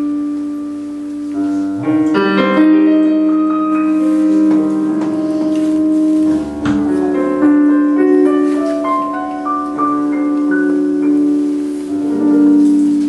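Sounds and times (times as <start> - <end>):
solo piano love song: 0.0 - 13.0.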